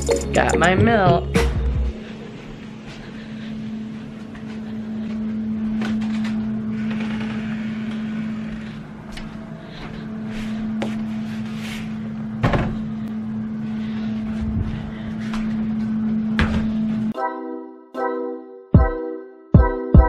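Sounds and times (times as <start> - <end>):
low electrical hum: 2.0 - 17.1.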